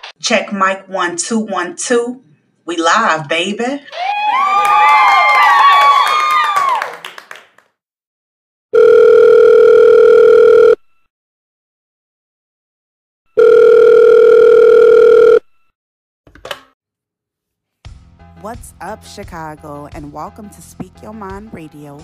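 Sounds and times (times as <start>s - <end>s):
telephone ringback tone: 8.8s - 11.1s, 13.3s - 15.6s.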